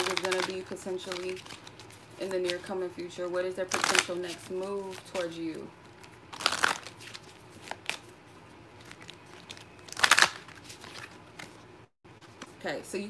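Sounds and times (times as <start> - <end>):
cards rustling: 0.0 - 12.6.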